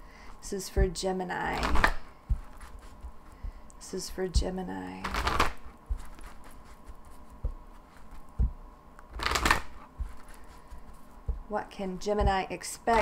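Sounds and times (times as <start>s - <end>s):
cards being shuffled: 1.5s - 3.2s, 5.0s - 11.2s.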